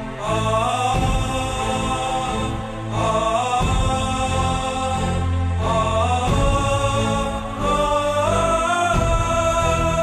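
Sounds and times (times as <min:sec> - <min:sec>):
dramatic orchestral score: 0:00.0 - 0:10.0.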